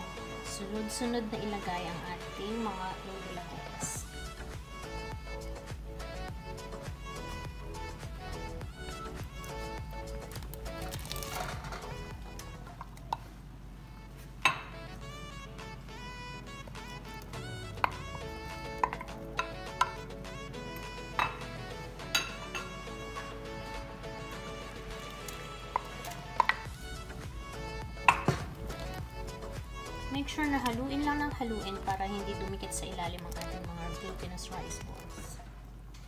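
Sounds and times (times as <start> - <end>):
background music: 0.0 - 35.8
wooden spoon knocking on pot: 14.5 - 14.8, 18.8 - 20.0, 28.0 - 28.6.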